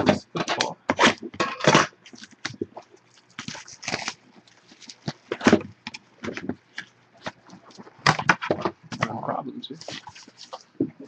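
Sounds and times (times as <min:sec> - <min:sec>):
plastic shrink wrap crinkling: 0:02.0 - 0:09.1, 0:09.7 - 0:11.0.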